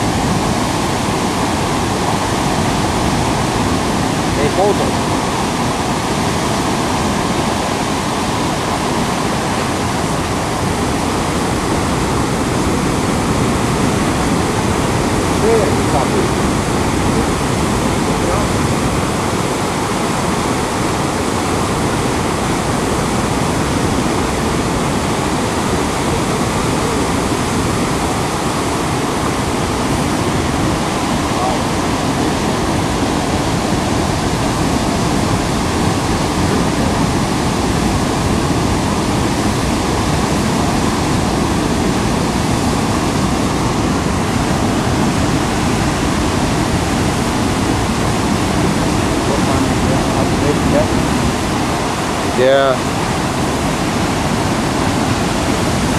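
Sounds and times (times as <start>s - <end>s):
waterfall rushing: 0.0s - 55.9s.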